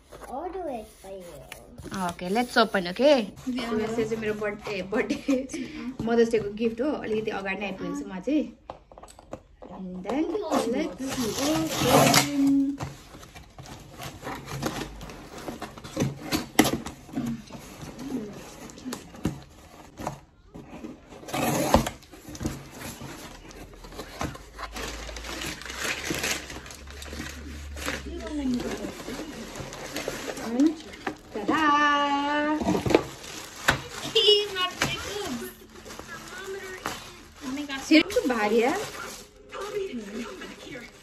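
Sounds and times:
cardboard crackling and scraping: 0:00.0 - 0:07.4, 0:10.2 - 0:41.0
plastic packaging rustling: 0:00.0 - 0:08.4, 0:10.2 - 0:41.0.

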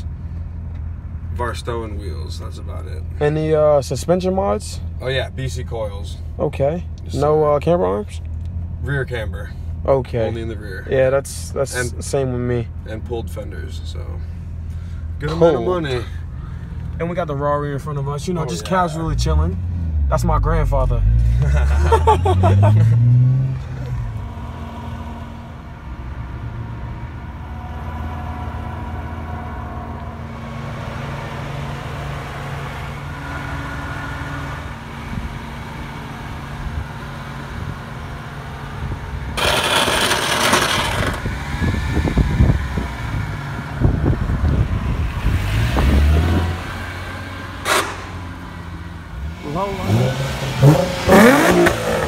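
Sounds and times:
car engine revving: 0:00.0 - 0:52.0.

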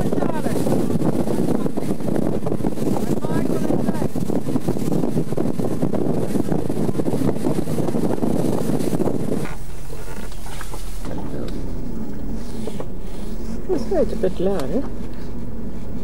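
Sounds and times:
steady low hum: 0:00.0 - 0:16.0
wind buffeting microphone: 0:00.0 - 0:16.0.

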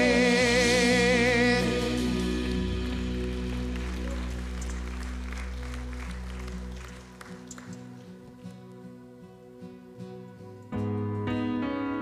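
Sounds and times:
worship band low chord: 0:00.0 - 0:07.7
congregation applause: 0:01.8 - 0:08.7.

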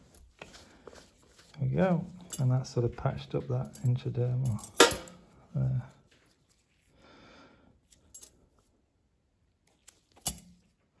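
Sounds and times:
cloth rustling: 0:00.0 - 0:07.0.

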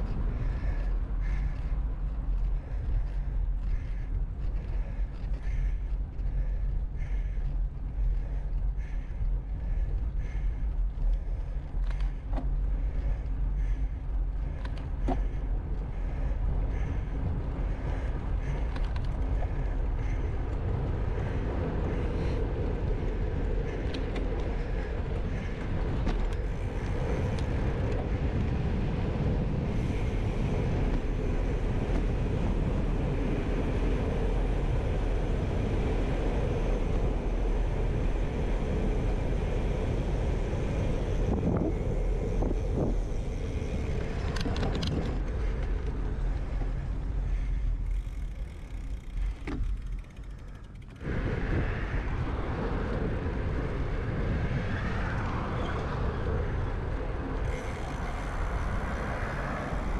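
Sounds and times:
bicycle tyres on asphalt: 0:00.0 - 0:59.9
wind rush on microphone: 0:00.0 - 0:59.9.

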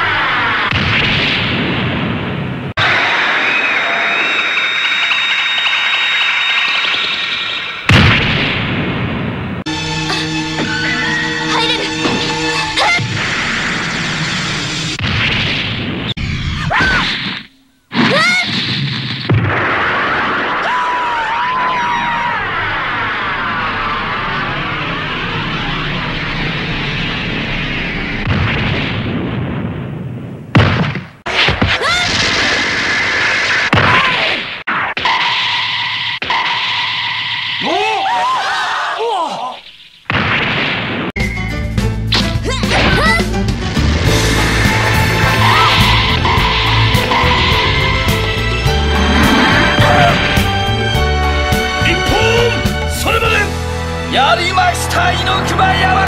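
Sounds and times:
sustained rushing noise: 0:43.7 - 0:50.9.

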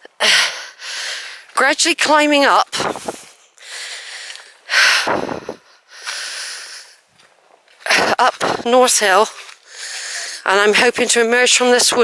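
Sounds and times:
heavy breathing: 0:00.2 - 0:01.5, 0:02.8 - 0:07.0, 0:09.4 - 0:10.5.

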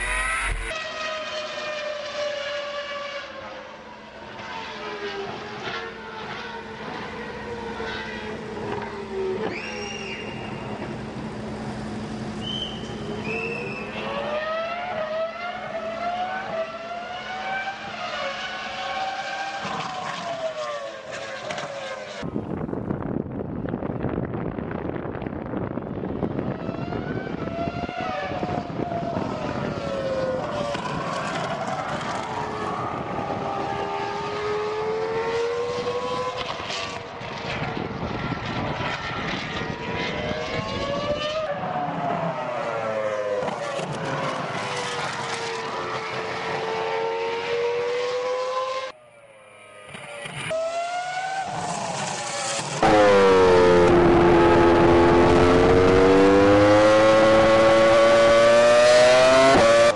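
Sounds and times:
racing car engine revving: 0:00.0 - 0:03.5, 0:12.4 - 0:22.2, 0:30.2 - 0:37.4, 0:38.9 - 0:48.9, 0:49.5 - 0:59.9
loud close engine onboard: 0:00.0 - 0:23.0, 0:25.8 - 0:59.9.

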